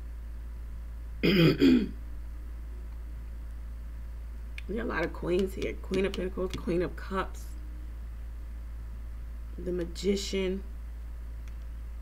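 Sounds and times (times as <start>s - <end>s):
woman clearing her throat: 1.2s - 2.0s.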